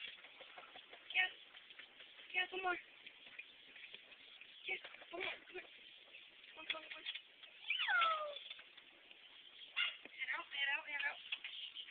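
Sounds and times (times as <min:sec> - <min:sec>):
puppy whining: 0:07.6 - 0:08.6.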